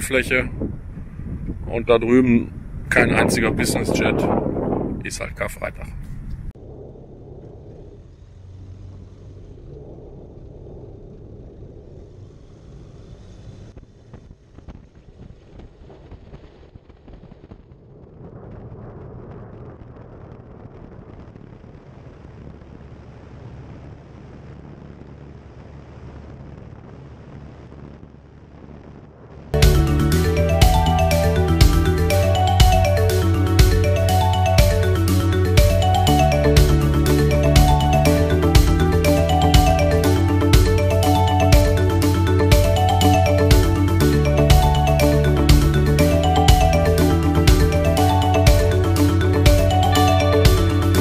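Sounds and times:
wind on microphone: 0.0 - 29.6
engine and propeller running: 6.0 - 16.3, 21.3 - 51.0
music: 29.6 - 51.0.

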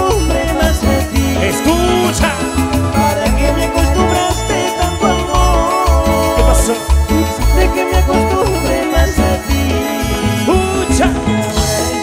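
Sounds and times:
cumbia bass and percussion beat: 0.0 - 12.0
man singing: 0.0 - 12.0.

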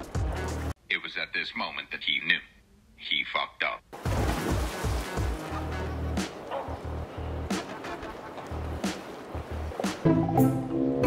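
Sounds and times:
water splashing and rushing: 0.0 - 0.7, 3.9 - 10.4
background music: 0.0 - 0.8, 4.0 - 11.0
string music: 4.6 - 11.0.

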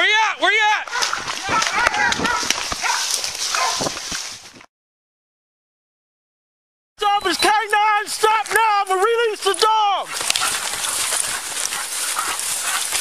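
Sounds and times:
dog barking in bursts: 0.9 - 3.9
camera jolting while running: 0.9 - 4.6, 10.1 - 13.0.

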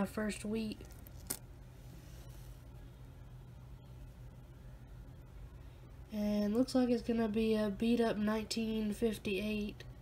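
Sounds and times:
low steady hum: 0.0 - 10.0
faint coin handling: 0.7 - 2.6.

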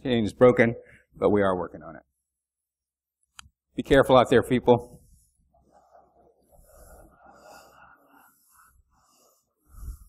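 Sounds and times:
faint breath noise: 4.9 - 10.0.

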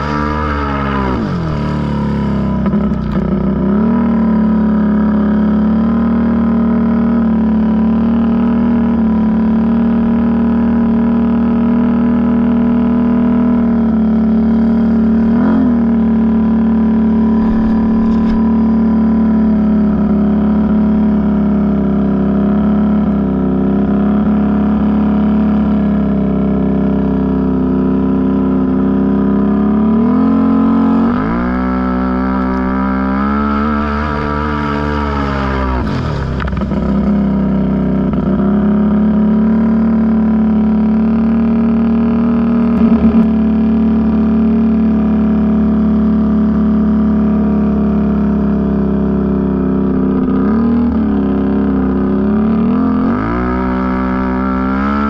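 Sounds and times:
atv engine running: 0.0 - 55.0.

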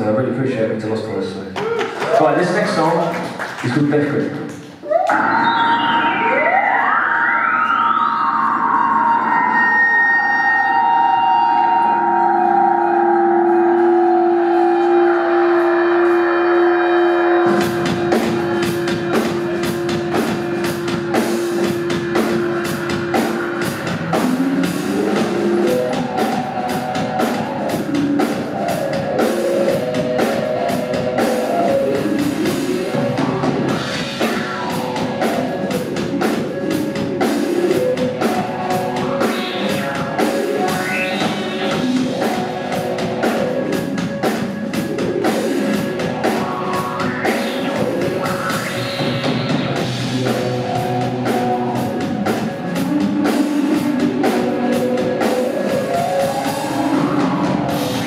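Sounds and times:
drums: 0.0 - 58.0
live rock band playing: 1.6 - 58.0
sliding siren-like tones: 4.8 - 58.0.

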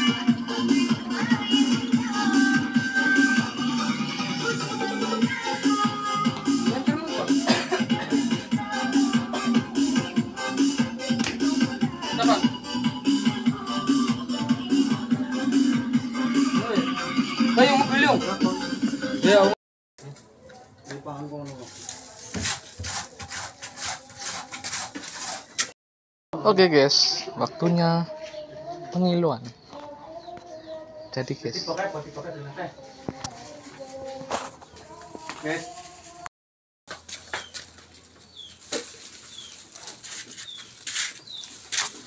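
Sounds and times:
wooden paddle scraping wok: 21.7 - 25.7
small bird chirping: 37.4 - 39.7, 40.4 - 41.6.

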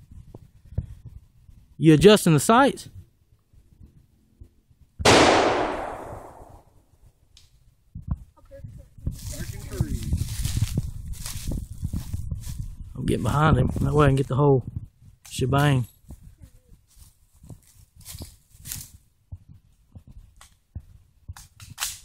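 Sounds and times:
rifle shot with echo: 5.1 - 6.7.

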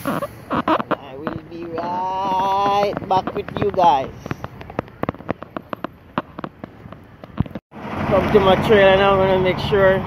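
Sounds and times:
footsteps on pavement: 0.0 - 7.6.

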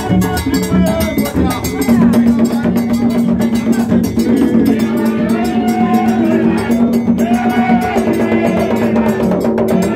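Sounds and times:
hand drums: 0.0 - 9.9
rapid metallic percussion: 0.0 - 9.9.

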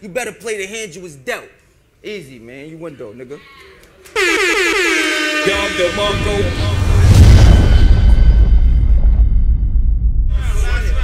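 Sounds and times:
air horn blast falling in pitch: 4.2 - 7.0
deep rumble: 5.9 - 11.0.

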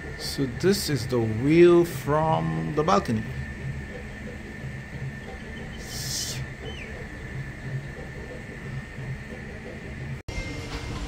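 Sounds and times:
mechanical hum with low throb: 0.0 - 11.0
thin steady whine: 0.0 - 11.0.

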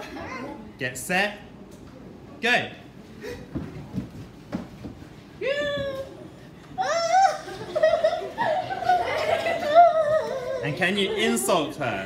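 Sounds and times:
running footsteps on wooden floor: 3.5 - 6.0.

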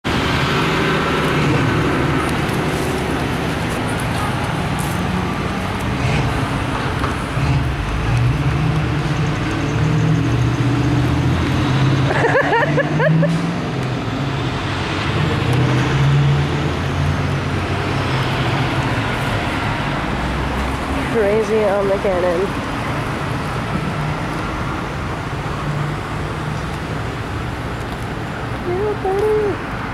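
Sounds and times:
road traffic: 0.0 - 29.9
person speaking: 28.6 - 29.7.

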